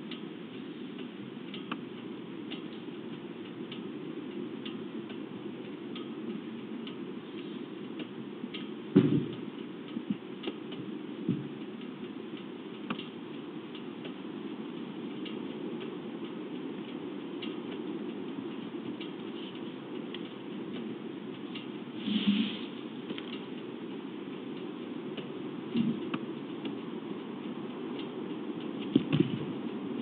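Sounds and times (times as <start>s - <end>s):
faint light ticks: 0.0s - 22.0s, 22.7s - 30.0s
steady low hum: 0.0s - 30.0s
knocks: 9.0s - 9.4s.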